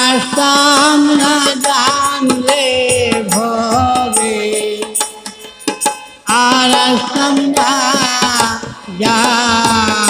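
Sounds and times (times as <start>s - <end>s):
person singing folk song: 0.0s - 5.5s, 6.2s - 10.0s
percussion strikes: 0.0s - 10.0s.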